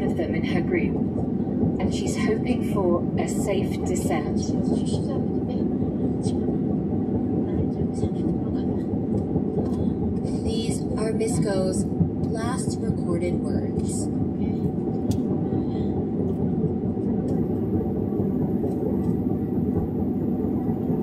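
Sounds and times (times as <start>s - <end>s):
vehicle engine and tyres rumbling: 0.0s - 21.0s.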